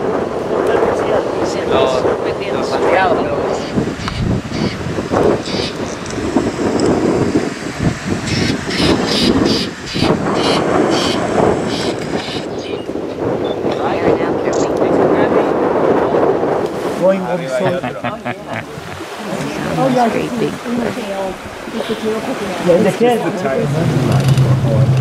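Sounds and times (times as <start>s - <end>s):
strong wind buffeting microphone: 0.0s - 25.0s.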